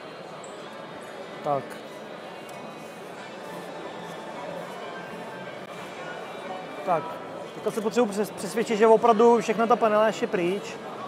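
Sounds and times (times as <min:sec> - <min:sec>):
murmur of distant voices: 0:00.0 - 0:11.0.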